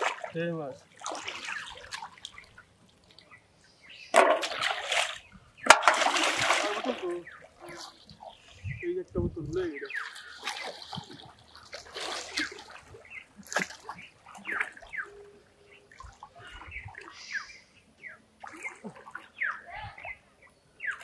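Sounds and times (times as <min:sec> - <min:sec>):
water splashing from swimming: 0:00.0 - 0:03.5, 0:04.1 - 0:08.6, 0:09.8 - 0:17.4, 0:18.4 - 0:20.2.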